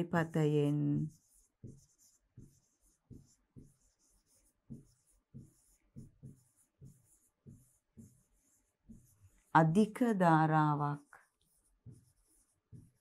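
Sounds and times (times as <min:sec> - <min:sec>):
marker writing on whiteboard: 0:00.0 - 0:13.0.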